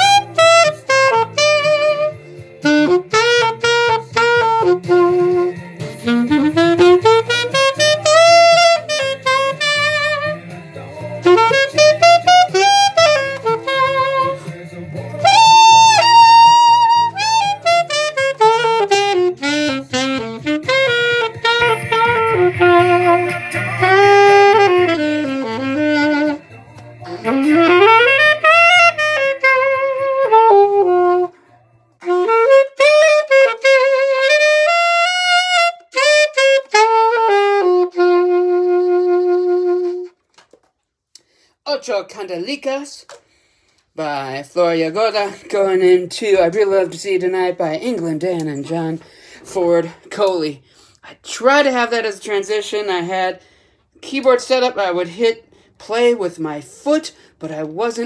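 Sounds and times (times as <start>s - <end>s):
low musical accompaniment: 0.0s - 40.2s
alto saxophone melody: 0.0s - 40.5s.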